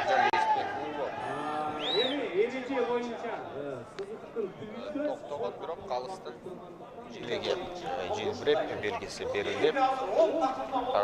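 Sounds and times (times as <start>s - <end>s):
men talking indistinctly: 0.0s - 11.0s.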